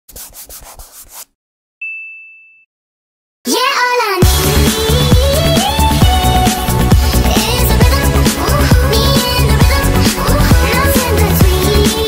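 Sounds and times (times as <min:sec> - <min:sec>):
scratchy rubbing strokes: 0:00.1 - 0:01.4
high chime ringing: 0:01.8 - 0:02.7.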